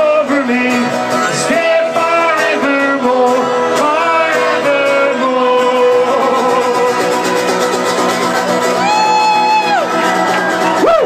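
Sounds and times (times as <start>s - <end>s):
acoustic guitar and accordion: 0.0s - 8.9s
crowd whoop: 6.9s - 11.0s.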